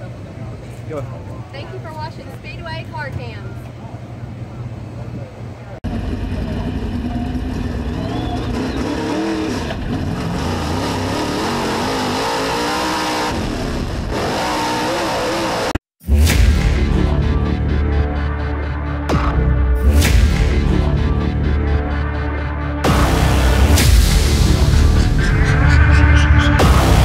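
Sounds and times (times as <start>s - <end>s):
race car engine revving: 5.8s - 15.8s, 22.8s - 27.0s.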